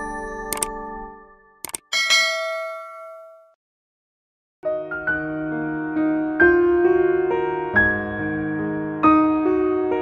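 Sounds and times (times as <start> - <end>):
bell notification ding: 1.9 - 3.6.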